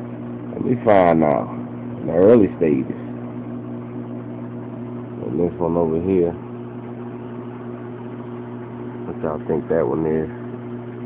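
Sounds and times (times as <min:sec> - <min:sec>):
aquarium pump humming: 0:00.0 - 0:11.0.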